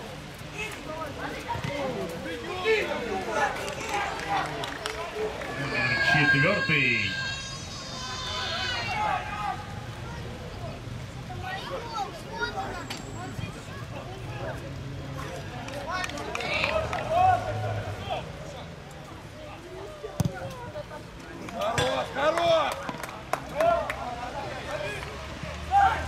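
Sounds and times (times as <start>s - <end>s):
loud shout: 5.2s - 9.8s, 25.7s - 26.0s
men calling out: 5.4s - 9.7s.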